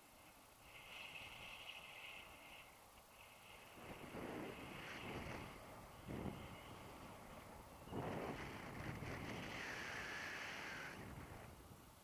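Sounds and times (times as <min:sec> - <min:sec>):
wind rushing over microphone: 0:03.4 - 0:12.0.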